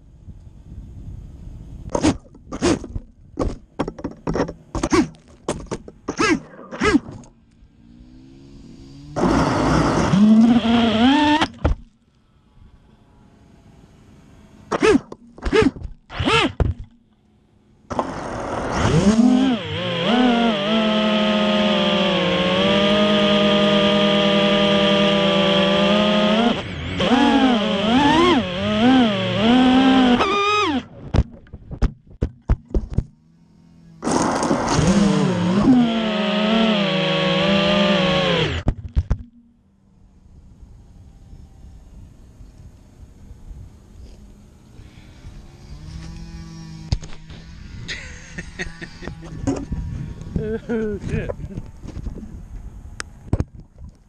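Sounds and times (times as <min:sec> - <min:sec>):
quadcopter motors whining: 0:06.0 - 0:17.0, 0:17.6 - 0:31.1, 0:33.2 - 0:38.7, 0:40.5 - 0:53.3.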